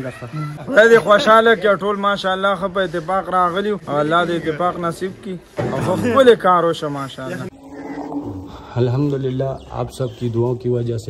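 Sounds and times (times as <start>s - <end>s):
man speaking: 8.3s - 11.0s.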